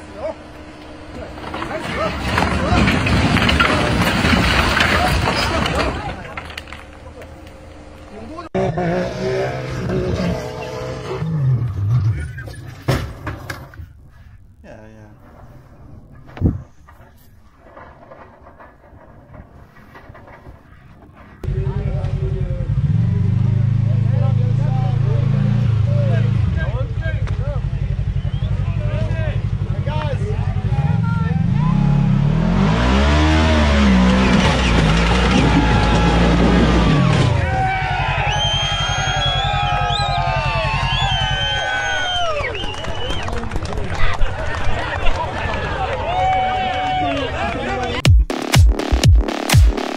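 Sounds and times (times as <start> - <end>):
engine revving hard: 8.7 - 12.2, 30.5 - 37.5
shrill whistles: 28.2 - 28.6, 38.1 - 43.3.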